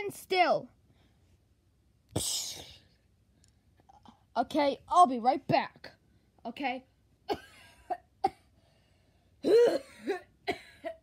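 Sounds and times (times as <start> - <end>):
person coughing and hacking: 2.1 - 2.9, 7.3 - 8.6, 9.4 - 11.0.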